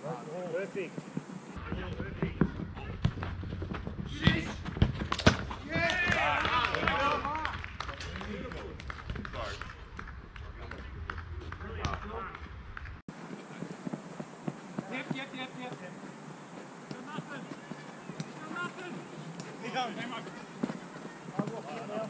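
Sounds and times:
footsteps running on artificial turf: 0.4s - 7.0s, 13.1s - 22.0s
football being kicked: 1.2s - 6.4s, 13.8s - 22.0s
players shouting: 5.6s - 7.6s, 14.7s - 22.0s.

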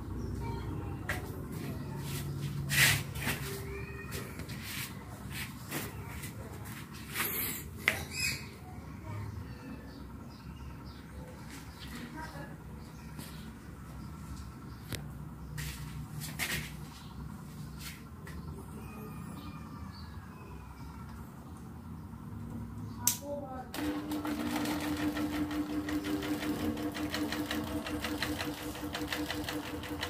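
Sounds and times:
fan motor hum: 19.6s - 30.0s
fan switch click: 23.0s - 23.3s
fan ticking rattle: 23.7s - 30.0s.

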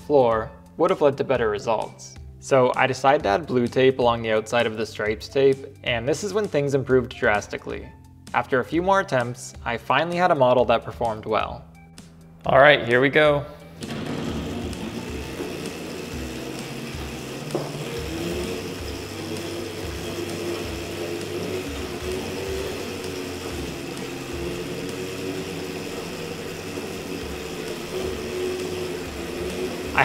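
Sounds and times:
electric go-kart motor whine: 13.8s - 30.0s
low whirs: 13.8s - 30.0s.

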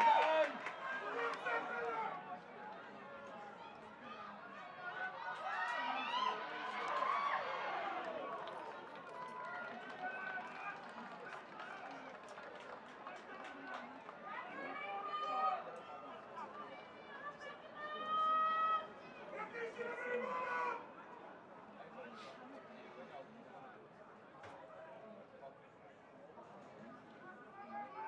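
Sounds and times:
players shouting across a field: 16.4s - 21.0s.

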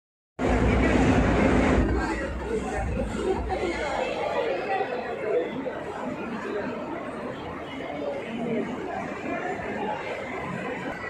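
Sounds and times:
heavy low rumble: 0.4s - 3.5s
crowd chatter: 0.4s - 11.0s.

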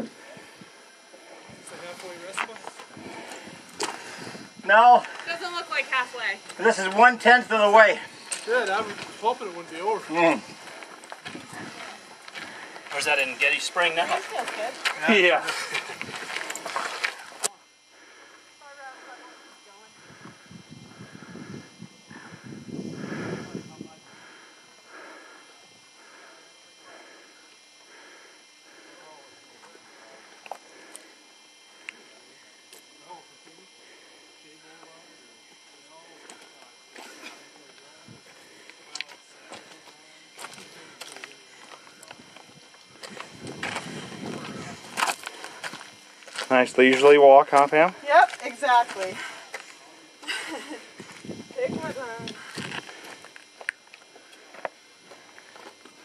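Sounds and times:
faint voices: 0.0s - 56.0s
footsteps on gravel: 8.3s - 17.5s, 42.9s - 49.7s, 52.2s - 56.0s.

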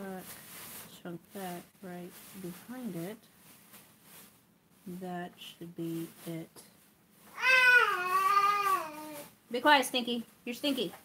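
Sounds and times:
cat meowing: 7.4s - 9.2s.

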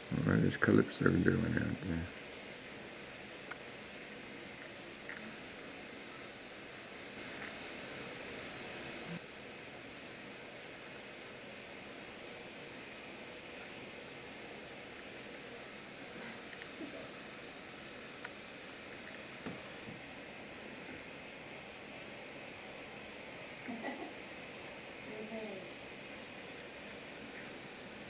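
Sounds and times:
faint steady hiss: 0.0s - 28.0s.

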